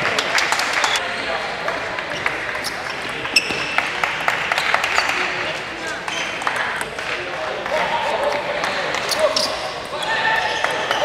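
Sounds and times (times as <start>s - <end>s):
voices in a hall: 0.0s - 11.0s.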